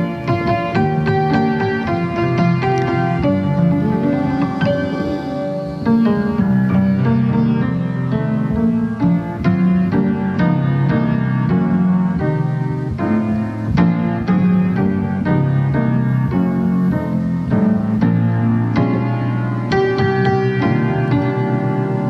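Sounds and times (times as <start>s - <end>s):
solo grand piano: 0.0s - 22.0s.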